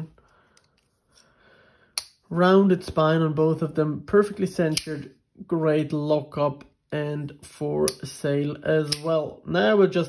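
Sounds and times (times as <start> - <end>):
sharp click: 4.7 - 5.0, 8.9 - 9.2.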